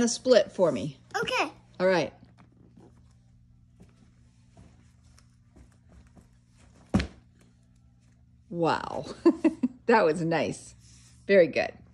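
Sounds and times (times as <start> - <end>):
steady low hum: 0.0 - 11.9
child's footfalls on carpet: 3.6 - 7.2.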